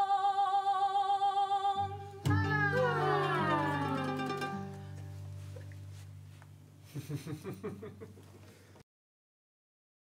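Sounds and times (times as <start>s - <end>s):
live ensemble music: 2.0s - 6.6s.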